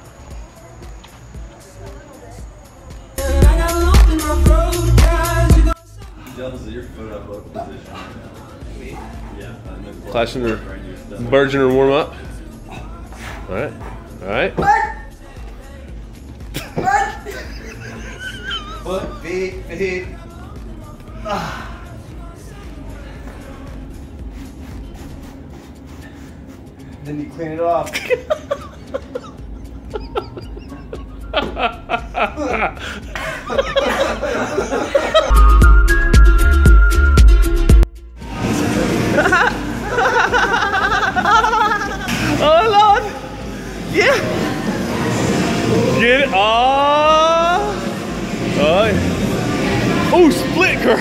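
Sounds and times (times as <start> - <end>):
rhythmic background music: 0.0 - 51.0.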